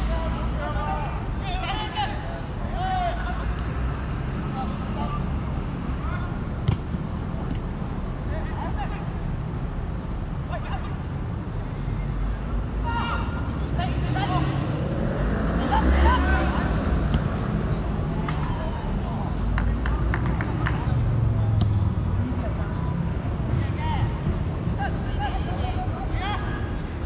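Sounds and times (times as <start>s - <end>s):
players calling and shouting: 0.0s - 27.0s.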